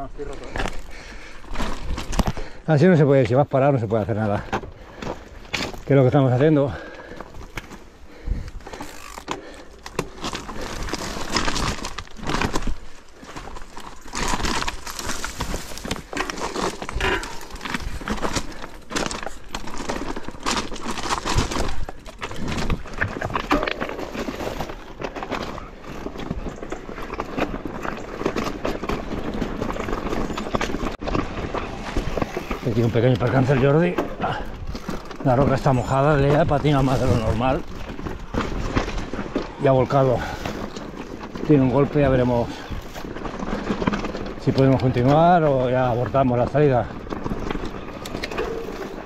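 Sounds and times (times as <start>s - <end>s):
tyres crunching over stones: 0.0s - 49.0s
bike knocks and rattles: 3.9s - 49.0s.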